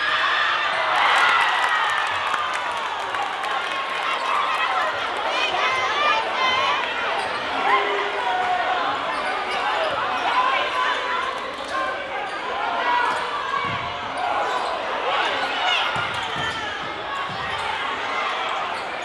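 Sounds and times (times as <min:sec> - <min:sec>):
murmur of spectators' voices: 0:00.0 - 0:19.0.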